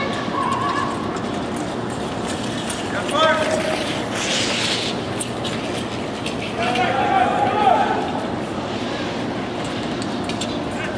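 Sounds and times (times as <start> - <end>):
skate blades scraping ice: 0.0 - 10.9.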